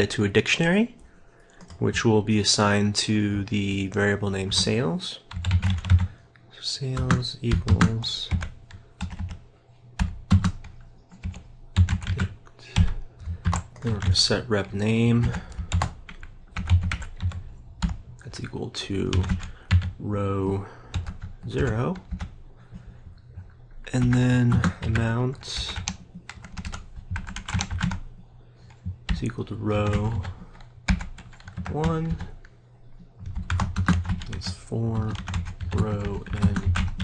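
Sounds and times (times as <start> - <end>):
computer keyboard typing: 4.4 - 6.2, 7.0 - 9.4, 10.0 - 14.3, 15.1 - 18.0, 19.0 - 20.0, 20.9 - 22.4, 24.0 - 28.1, 28.7 - 32.5, 33.2 - 37.0.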